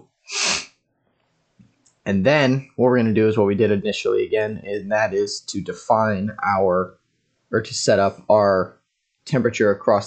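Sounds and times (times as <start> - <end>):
breathy burst of air: 0.3 - 0.7.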